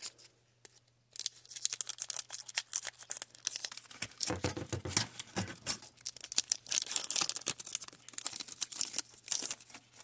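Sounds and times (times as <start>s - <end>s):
foil wrapper crinkling: 1.1s - 10.0s
foil pack tearing open: 5.0s - 9.8s.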